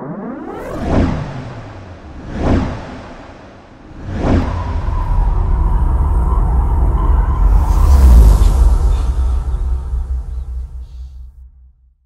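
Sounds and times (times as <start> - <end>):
whooshes: 0.0 - 11.2
deep rumble with held tone: 0.0 - 11.5.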